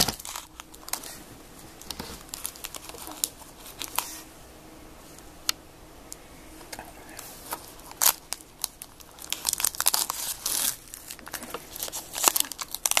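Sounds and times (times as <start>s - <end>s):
foil wrapper tearing and crinkling: 0.0s - 1.2s, 1.8s - 4.2s, 7.5s - 13.0s.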